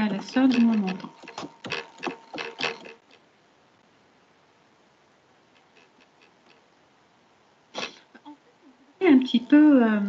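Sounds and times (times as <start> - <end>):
computer keyboard typing: 0.4 - 3.0.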